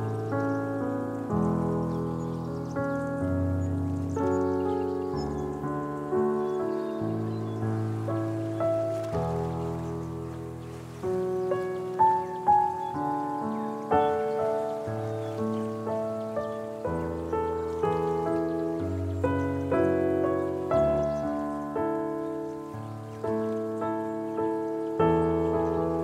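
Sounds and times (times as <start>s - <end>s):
slow gentle piano piece: 0.0s - 26.0s.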